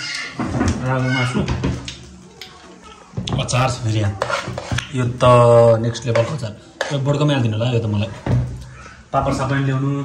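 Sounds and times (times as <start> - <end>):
metal spoon scraping metal pot: 3.6 - 7.2.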